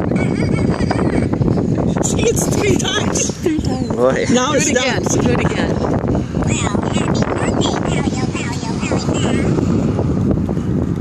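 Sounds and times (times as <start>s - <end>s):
wind rumbling on microphone: 0.0s - 11.0s
high-pitched voice: 6.5s - 9.6s.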